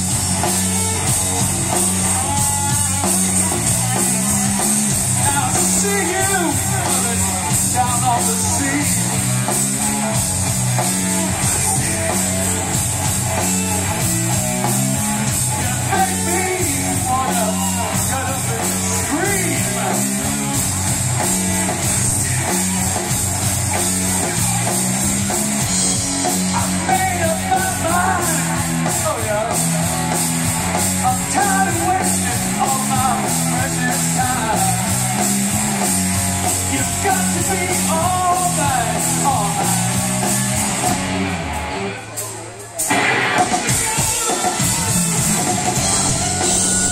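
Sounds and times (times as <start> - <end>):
bass guitar: 0.0 - 46.9
drum kit with cymbals: 0.0 - 46.9
electric guitars: 0.0 - 46.9
live rock band playing: 0.0 - 46.9.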